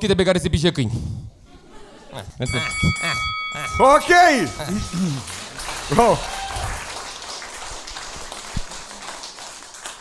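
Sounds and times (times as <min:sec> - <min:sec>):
audience applauding: 0:04.4 - 0:10.0.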